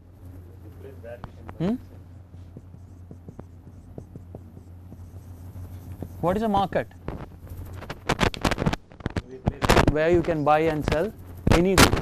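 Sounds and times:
marker writing on whiteboard: 0.0 - 8.7, 9.9 - 12.0
steady low hum: 0.0 - 12.0.

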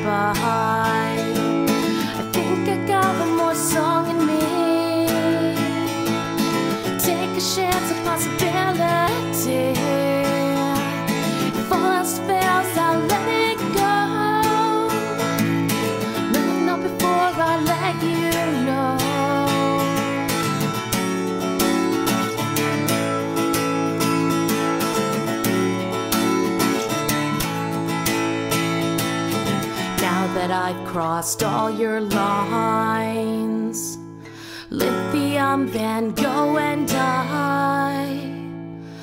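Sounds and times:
woman singing: 0.0 - 21.0, 29.3 - 39.0
acoustic guitar strumming: 0.0 - 39.0.

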